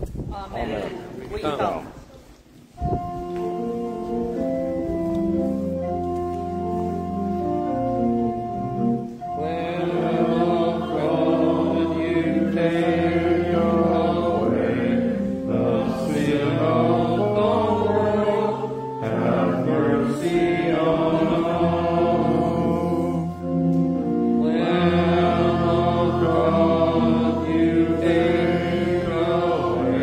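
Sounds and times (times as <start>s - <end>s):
organ chords: 2.8s - 30.0s
group singing a hymn: 6.4s - 30.0s.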